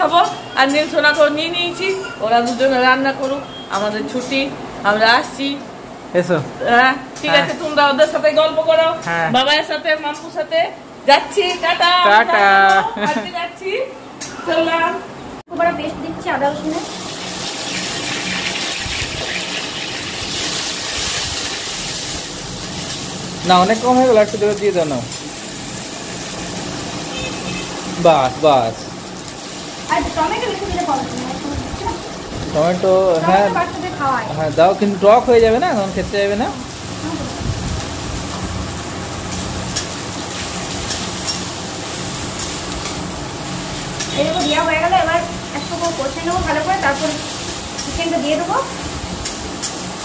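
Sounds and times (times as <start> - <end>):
onions sizzling in hot oil: 0.0 - 1.7, 16.1 - 50.0.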